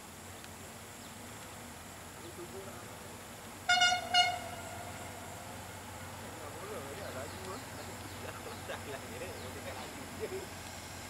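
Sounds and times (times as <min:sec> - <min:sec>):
diesel locomotive horn toots: 0:03.7 - 0:05.3.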